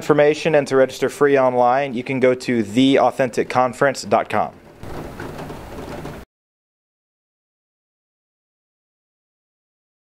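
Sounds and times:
steady room hiss: 0.0 - 6.2.

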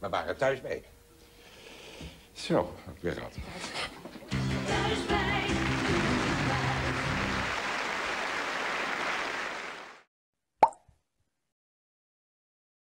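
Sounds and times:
steady applause: 4.3 - 10.1.

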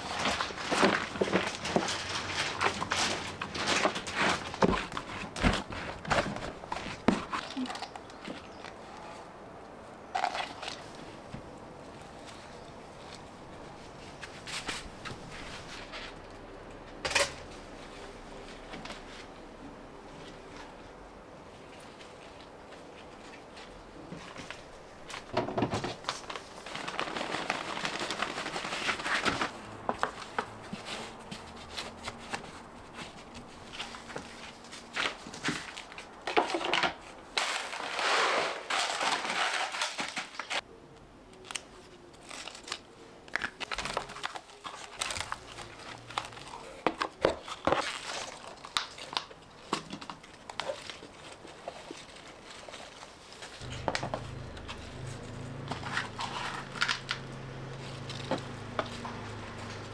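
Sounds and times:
plastic bag crinkling: 25.9 - 30.4, 42.2 - 59.7.

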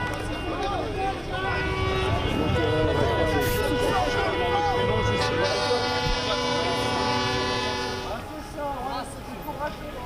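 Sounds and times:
horn blast: 1.4 - 8.2.

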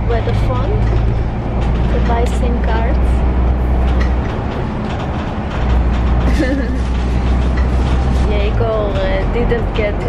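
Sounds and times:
bus engine and road noise: 0.0 - 10.0.

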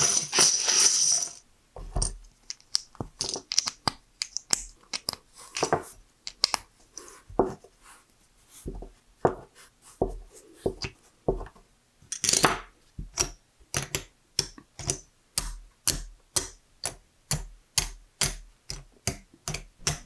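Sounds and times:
plastic bricks pouring and rattling: 0.0 - 1.4
plastic bricks clicking together: 2.0 - 6.6, 12.1 - 15.0.

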